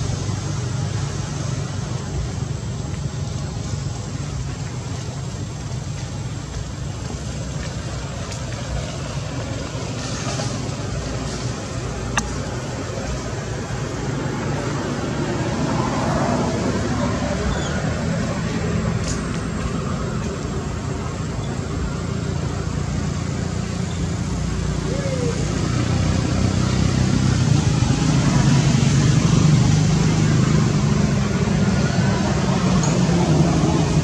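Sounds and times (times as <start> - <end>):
road traffic rumble: 0.0 - 34.0.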